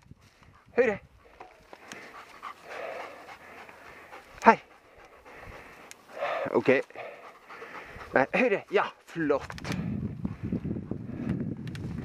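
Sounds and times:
dog panting hard: 0.5 - 9.2, 10.0 - 11.5.

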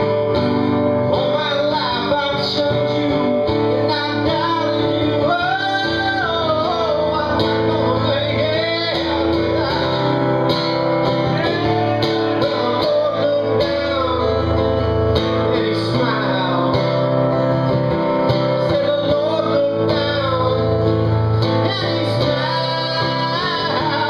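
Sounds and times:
acoustic guitar strumming: 0.0 - 24.0
man singing: 0.8 - 24.0.

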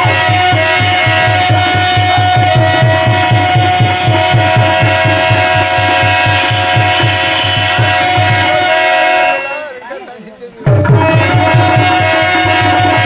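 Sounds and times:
hand drum beat: 0.0 - 8.6, 10.7 - 13.0
long sustained held notes: 0.0 - 9.7.

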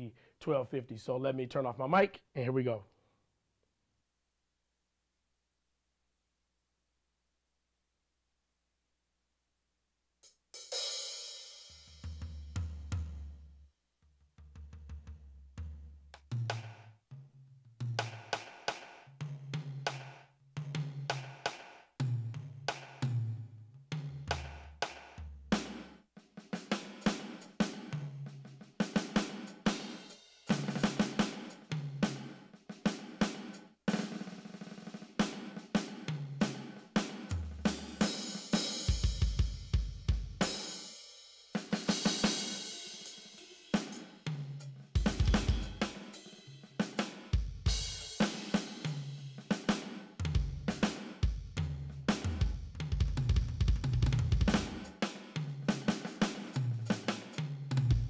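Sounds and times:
electronic drum kit groove: 17.8 - 58.0.

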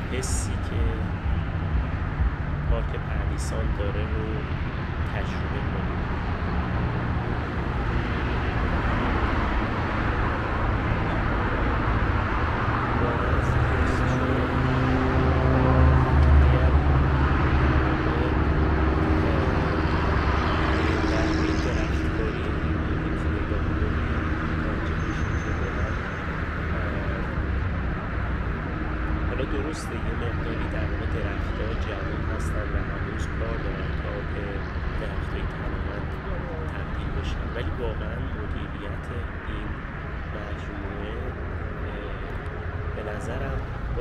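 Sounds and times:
deep engine rumble: 0.0 - 44.0
highway traffic: 0.0 - 44.0.

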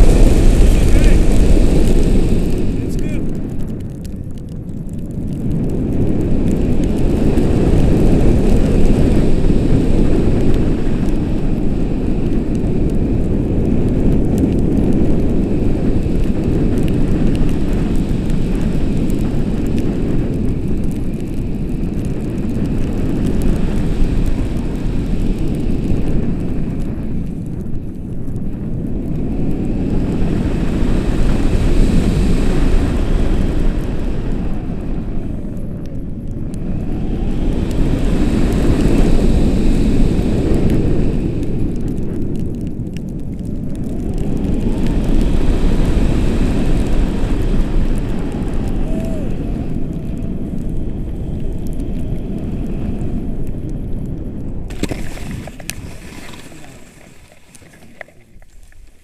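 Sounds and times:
wind rushing over microphone: 0.0 - 59.0.

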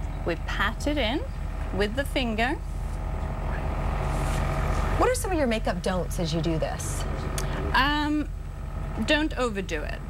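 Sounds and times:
low mechanical rumble: 0.0 - 10.0.

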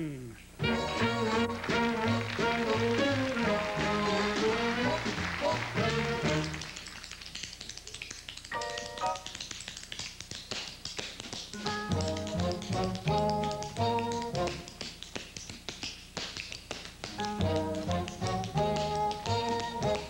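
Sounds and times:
dance band playing: 0.6 - 6.7, 17.2 - 20.0
tap shoes on hard floor: 10.8 - 20.0.

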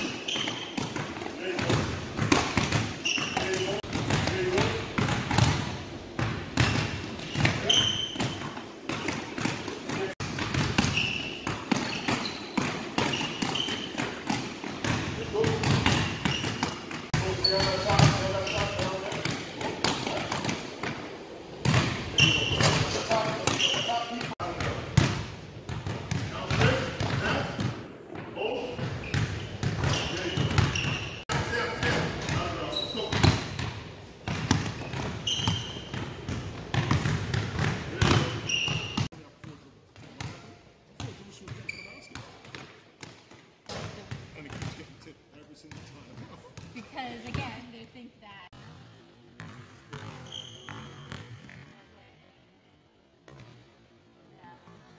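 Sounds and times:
basketballs bouncing on hardwood: 0.0 - 39.1
sneakers squeaking on court: 0.0 - 44.8, 49.4 - 51.8.

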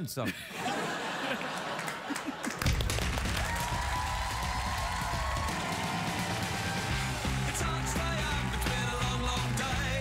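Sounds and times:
audience applauding: 1.1 - 10.0
rock music with heavy bass: 5.9 - 10.0.

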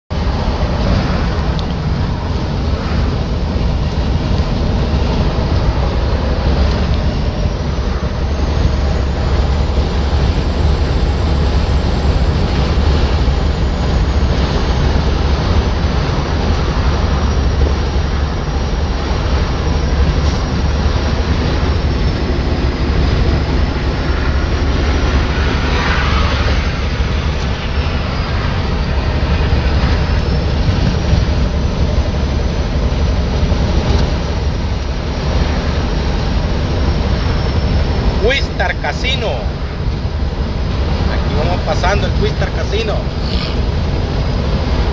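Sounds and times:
car road and engine noise: 0.1 - 44.9.

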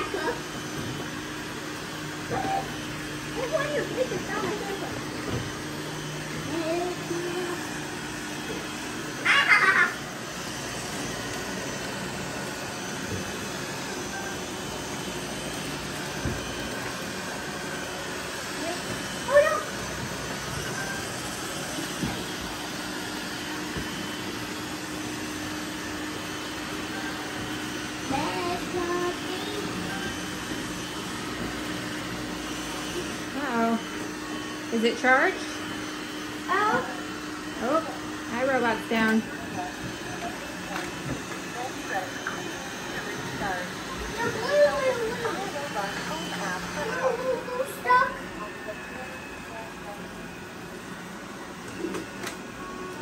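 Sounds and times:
robot vacuums whirring: 0.0 - 53.0.

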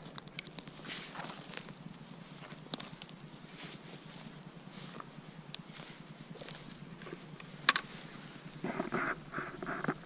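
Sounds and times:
twigs crackling: 0.0 - 10.0
footsteps on forest floor: 0.6 - 9.0.

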